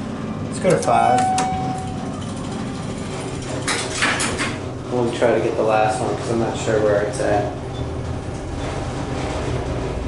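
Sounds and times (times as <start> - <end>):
elevator hum: 0.0 - 10.0
elevator doors rattling shut: 0.5 - 10.0.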